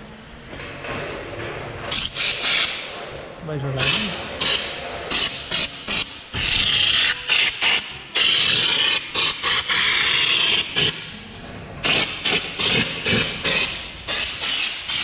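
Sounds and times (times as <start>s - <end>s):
air spray gun hissing: 1.9s - 2.9s, 3.8s - 11.1s, 11.8s - 15.0s.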